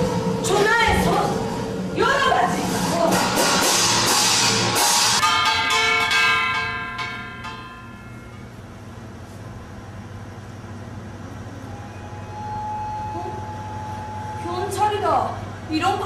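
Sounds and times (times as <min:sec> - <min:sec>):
low steady hum: 0:05.2 - 0:16.0.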